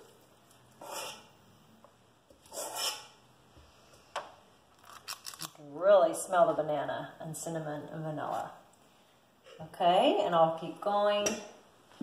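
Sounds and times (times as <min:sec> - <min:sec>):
person sniffing through nose: 0:02.5 - 0:03.1.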